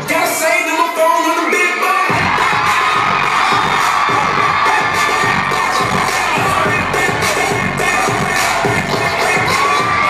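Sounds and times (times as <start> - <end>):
live pop music over pa: 0.0 - 10.0
crowd cheering: 1.8 - 10.0.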